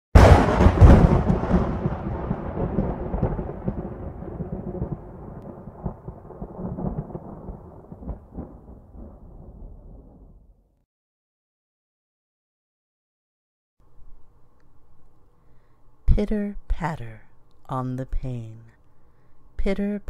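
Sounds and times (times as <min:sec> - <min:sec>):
thunder crack and rolling rumble: 0:00.2 - 0:10.6.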